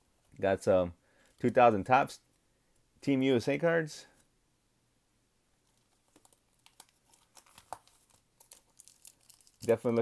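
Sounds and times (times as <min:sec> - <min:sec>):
foil wrapper crinkling: 0:05.7 - 0:10.0.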